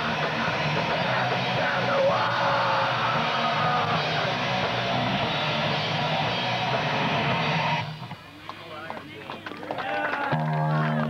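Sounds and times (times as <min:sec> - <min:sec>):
punk rock band playing: 0:00.0 - 0:08.1
murmur of voices: 0:07.8 - 0:11.0.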